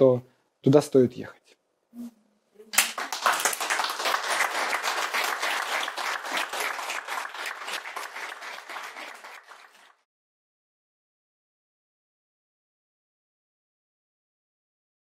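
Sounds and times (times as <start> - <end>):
audience applauding: 2.7 - 10.0.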